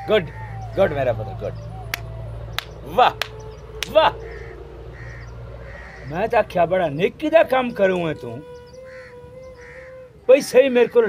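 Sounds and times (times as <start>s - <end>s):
man exclaiming: 2.8s - 4.2s
crow cawing: 2.9s - 6.4s, 8.4s - 11.0s.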